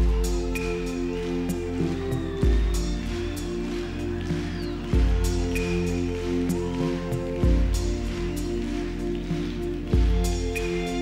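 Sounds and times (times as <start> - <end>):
electronic keyboard chords: 0.0 - 11.0.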